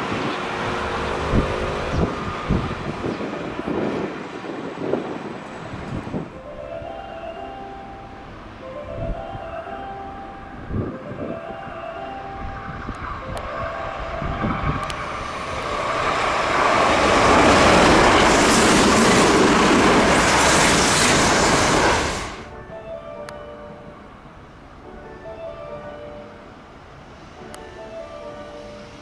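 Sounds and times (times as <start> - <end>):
electric train passing: 0.0 - 29.0.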